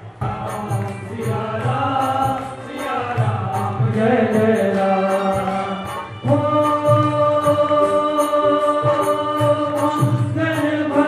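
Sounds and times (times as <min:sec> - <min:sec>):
devotional chanting over music: 0:00.0 - 0:11.0.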